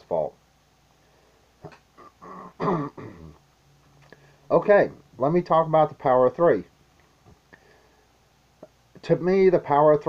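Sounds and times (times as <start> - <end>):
man clearing his throat: 2.0 - 3.4.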